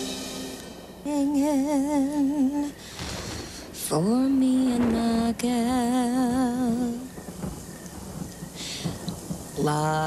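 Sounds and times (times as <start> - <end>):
low rumble of thunder: 0.0 - 10.0
steady rain falling: 0.0 - 10.0.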